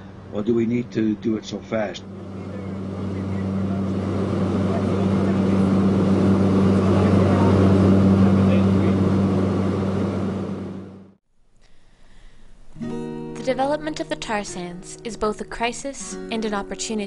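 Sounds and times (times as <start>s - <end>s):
aircraft engine drone in cabin: 1.1s - 11.2s.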